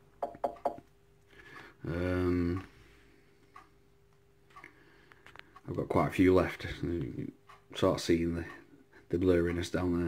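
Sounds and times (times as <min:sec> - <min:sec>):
man saying um: 0:01.8 - 0:02.7.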